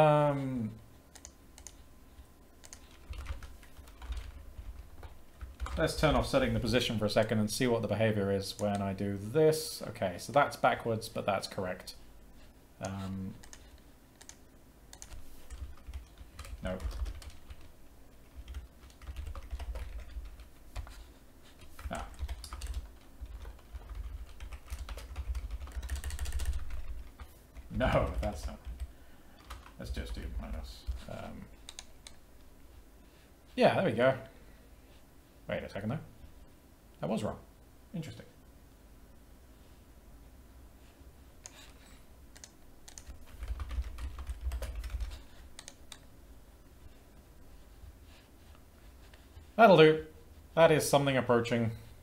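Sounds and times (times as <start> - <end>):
typing on computer keyboard: 1.1 - 1.8, 2.6 - 5.8, 13.4 - 17.7, 18.3 - 21.0, 21.6 - 27.3, 28.1 - 30.6, 31.6 - 32.2, 41.4 - 46.1.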